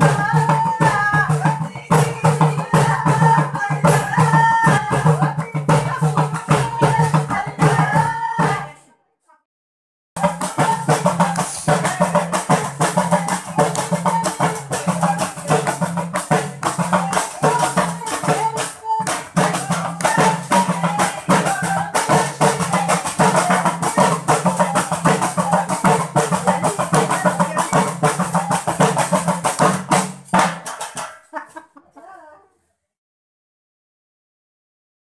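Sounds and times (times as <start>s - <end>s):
rhythmic handclapping: 0.0s - 8.6s, 10.2s - 31.7s
hand percussion: 0.0s - 8.7s, 10.2s - 31.6s
women singing: 0.0s - 9.1s, 10.2s - 30.1s.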